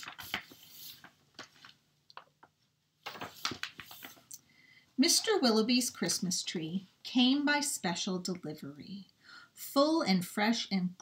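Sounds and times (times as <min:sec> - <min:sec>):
book page turning: 0:00.0 - 0:02.4, 0:03.0 - 0:04.4.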